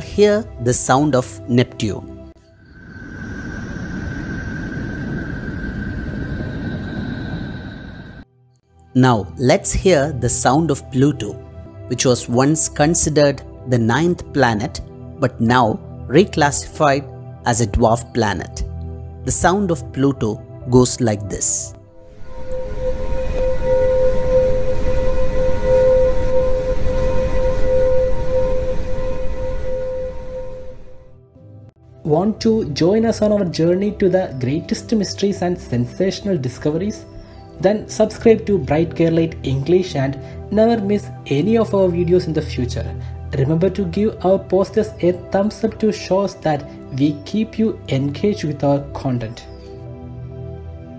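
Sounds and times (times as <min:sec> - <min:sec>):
steady drone: 0:02.4 - 0:08.3, 0:21.7 - 0:31.3
low rushing noise: 0:02.5 - 0:08.3, 0:21.8 - 0:31.2
thin high tone: 0:22.1 - 0:31.1.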